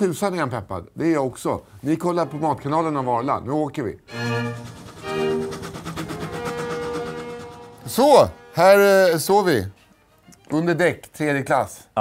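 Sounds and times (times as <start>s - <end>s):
orchestral bowed strings: 1.8s - 10.9s.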